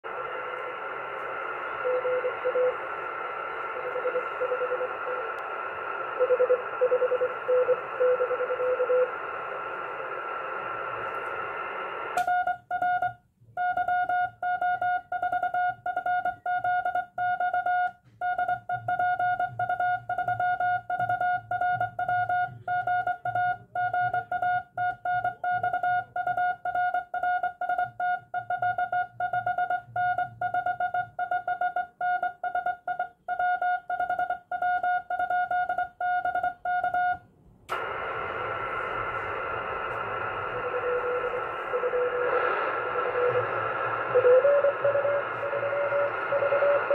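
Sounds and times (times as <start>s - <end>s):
receiver hiss: 0.1s - 12.3s, 37.7s - 46.9s
faint lower-pitched morse code: 1.7s - 2.8s, 3.6s - 5.2s, 6.2s - 9.1s, 40.0s - 46.9s
morse code beeps: 1.8s - 2.8s, 3.7s - 5.2s, 6.2s - 9.1s, 12.2s - 37.2s, 40.5s - 46.9s.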